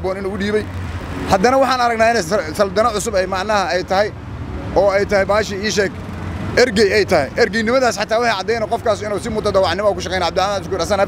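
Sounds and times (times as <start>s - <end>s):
man speaking: 0.0s - 11.0s
street traffic rumble: 0.0s - 11.0s.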